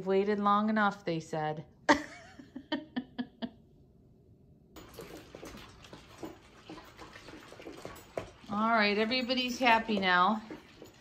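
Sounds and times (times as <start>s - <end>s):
dogs eating from bowls: 4.8s - 11.0s.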